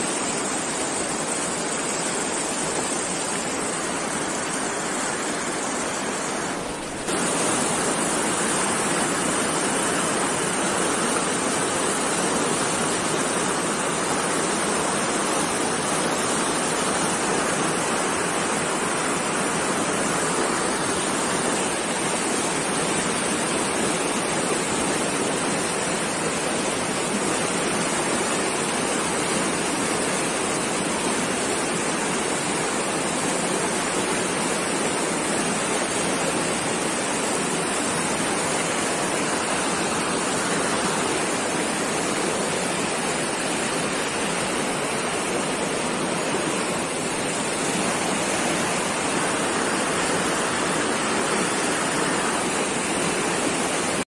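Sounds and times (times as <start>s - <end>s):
river rushing over rocks: 0.0s - 54.0s.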